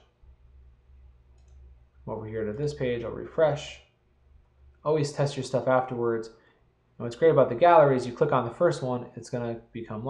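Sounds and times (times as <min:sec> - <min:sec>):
low steady hum: 0:00.0 - 0:10.0
computer mouse click: 0:01.3 - 0:01.7.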